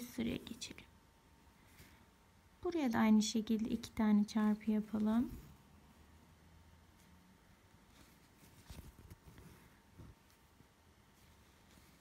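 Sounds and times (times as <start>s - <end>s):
soft scratches: 7.8s - 12.0s
thread drawn through cloth: 7.8s - 12.0s.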